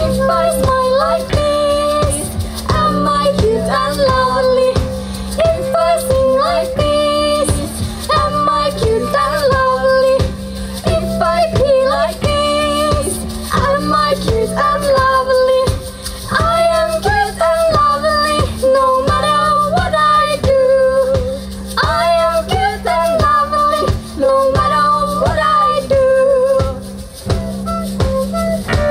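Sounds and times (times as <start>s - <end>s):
electric guitar: 0.0s - 28.9s
steady drum beat: 0.0s - 28.9s
woman singing into a microphone: 0.0s - 28.9s.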